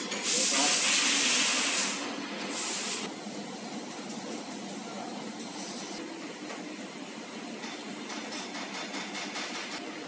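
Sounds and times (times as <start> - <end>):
loud steady hiss: 0.2 - 3.1.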